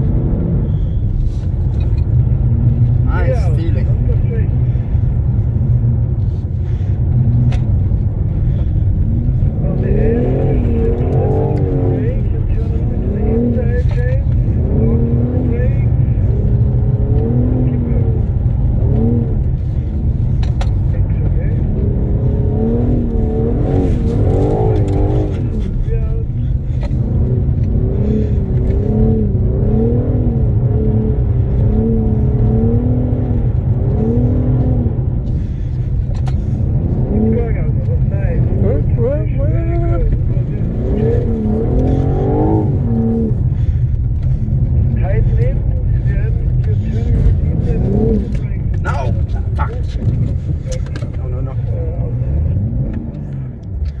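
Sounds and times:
car engine revving: 0.0 - 54.0
steady low rumble: 0.0 - 54.0.

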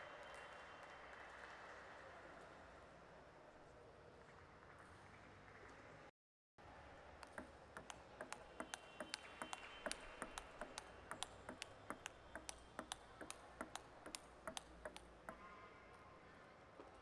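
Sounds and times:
table tennis ball clicking: 7.2 - 15.4.

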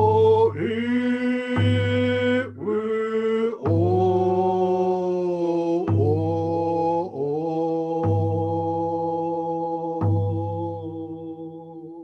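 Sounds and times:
hand drum beats: 0.0 - 2.7, 3.6 - 5.1, 5.7 - 11.4
man singing: 0.0 - 12.0.

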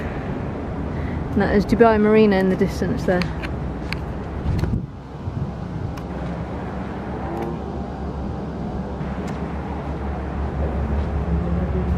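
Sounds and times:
air conditioning units droning: 0.0 - 11.9.

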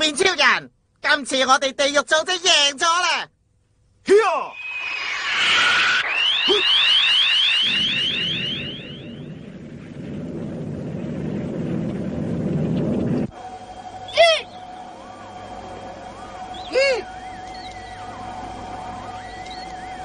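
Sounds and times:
steady electronic hum: 3.3 - 20.0
rising electronic chirps: 4.4 - 9.6
rumbling noise: 4.5 - 13.7.

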